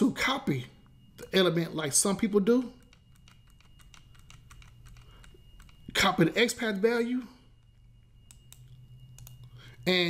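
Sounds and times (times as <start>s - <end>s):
low steady hum: 0.0s - 10.0s
rapid computer clicking: 2.2s - 7.0s, 7.6s - 9.5s.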